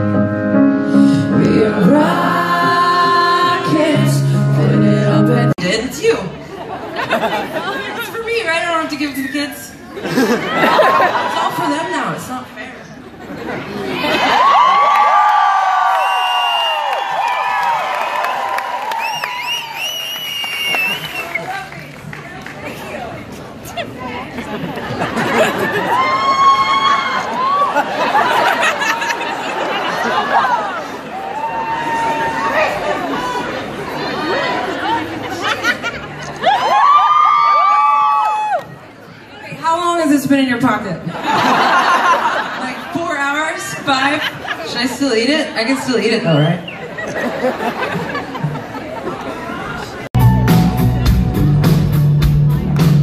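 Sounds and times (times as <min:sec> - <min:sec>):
audience chattering: 0:00.0 - 0:53.0
crowd cheering and screaming: 0:13.9 - 0:21.6, 0:25.2 - 0:35.0, 0:35.9 - 0:38.9.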